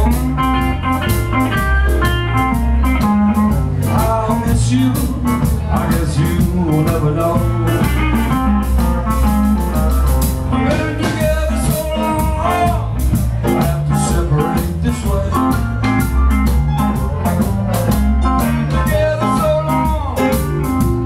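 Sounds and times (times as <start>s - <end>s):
drum kit beat: 0.0s - 21.0s
heavy bass: 0.0s - 21.0s.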